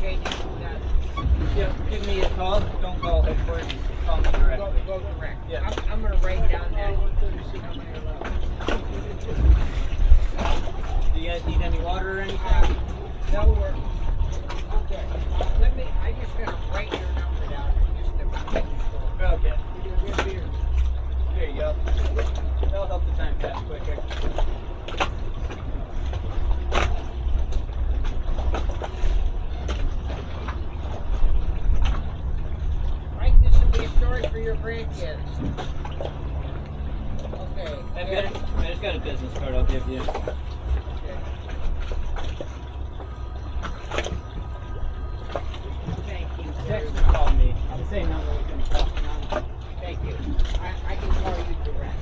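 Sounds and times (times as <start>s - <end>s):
boat engines idling: 0.0s - 52.0s
wind on microphone: 6.1s - 21.4s.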